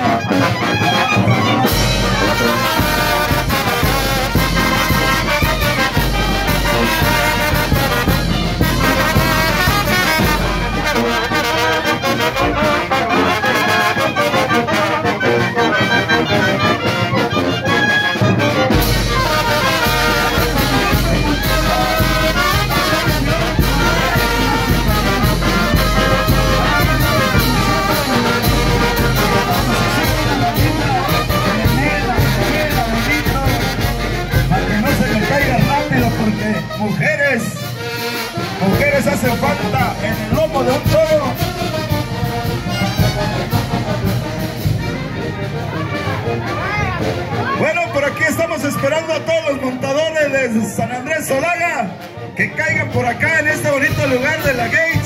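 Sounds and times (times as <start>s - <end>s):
wind band playing: 0.0s - 55.0s
bass drum: 1.4s - 12.8s, 18.6s - 36.7s, 38.4s - 45.0s.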